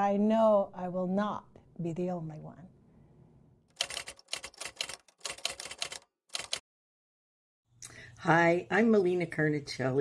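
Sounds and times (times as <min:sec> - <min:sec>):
typewriter keys clacking: 0:03.7 - 0:06.6.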